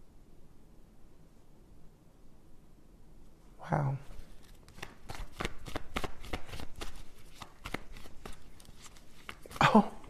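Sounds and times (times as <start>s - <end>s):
cards being shuffled: 4.0s - 9.7s.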